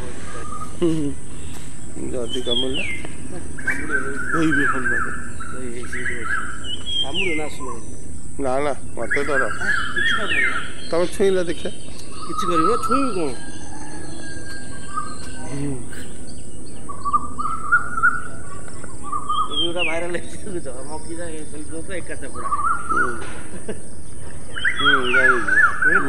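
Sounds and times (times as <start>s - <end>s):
birds calling: 0.0s - 26.0s.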